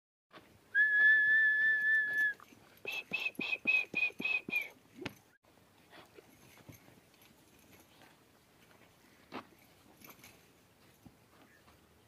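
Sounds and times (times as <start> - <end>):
high steady whistle: 0.8 - 4.7.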